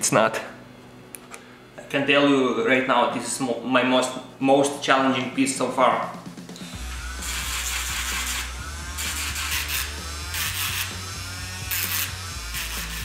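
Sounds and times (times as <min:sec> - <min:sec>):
background music with low bass: 0:05.6 - 0:13.0
rotary tool sanding amber: 0:06.8 - 0:13.0.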